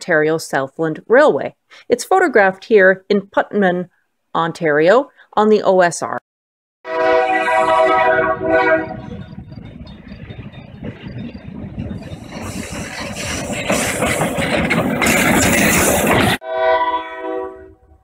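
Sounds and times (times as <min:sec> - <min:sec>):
locomotive horn: 0:06.8 - 0:09.4, 0:16.4 - 0:18.0
locomotive engine and wheels rumbling: 0:07.6 - 0:16.4.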